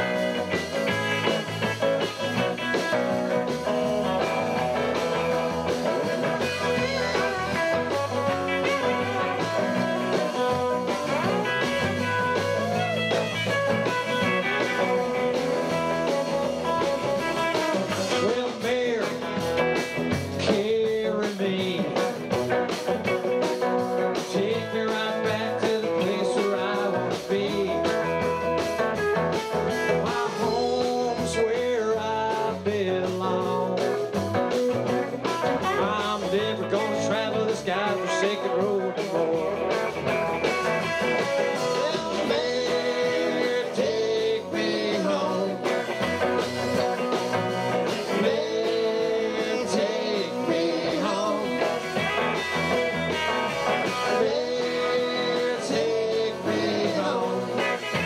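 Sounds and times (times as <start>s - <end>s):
live rock band playing: 0.0s - 58.0s.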